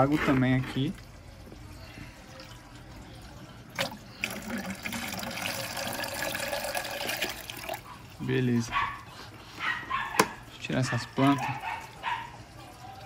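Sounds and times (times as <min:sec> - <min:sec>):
water pouring into a jar: 0:00.0 - 0:07.9.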